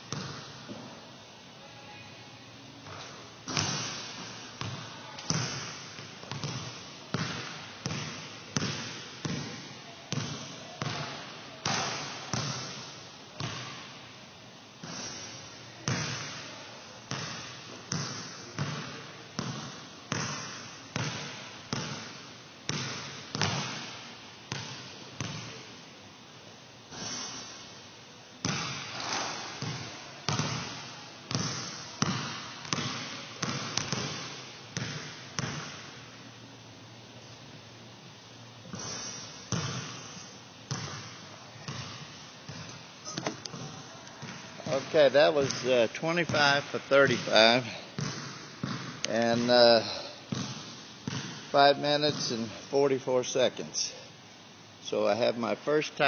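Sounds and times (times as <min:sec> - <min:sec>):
basketball bouncing on gym floor: 0:00.1 - 0:00.9, 0:02.8 - 0:13.9, 0:14.8 - 0:16.5, 0:17.1 - 0:25.7, 0:28.4 - 0:36.0, 0:38.7 - 0:52.5.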